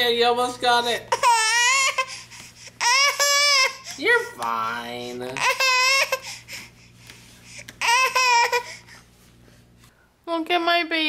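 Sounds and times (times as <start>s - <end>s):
baby whining cry: 1.1s - 4.1s, 5.3s - 6.7s, 7.8s - 9.0s.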